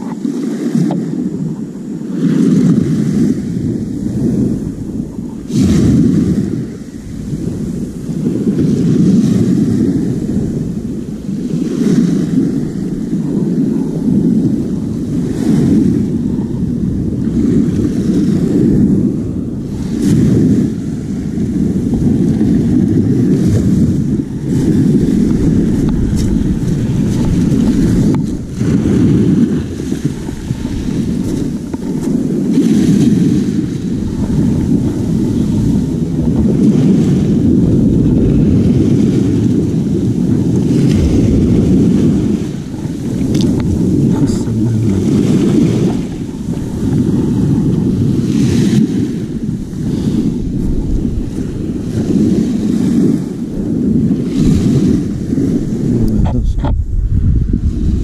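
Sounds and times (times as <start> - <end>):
surf washing on pebble shore: 0.0 - 58.0
wind rumbling on microphone: 0.0 - 58.0.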